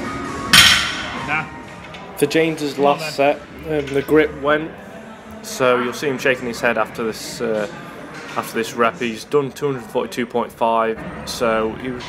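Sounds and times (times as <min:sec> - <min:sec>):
barbell crashing to floor: 0:00.5 - 0:01.2.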